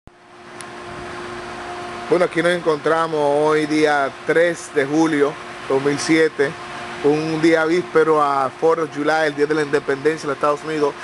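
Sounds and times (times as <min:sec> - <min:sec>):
low mechanical hum: 0:00.1 - 0:11.0.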